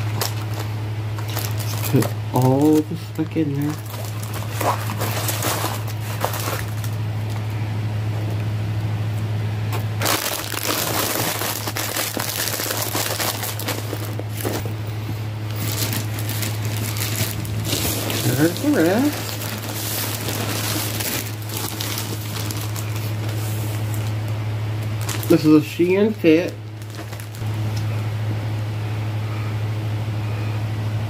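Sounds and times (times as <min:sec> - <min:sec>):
plastic packaging crinkling: 0:00.0 - 0:07.5, 0:09.7 - 0:27.5
steady low hum: 0:00.0 - 0:31.0.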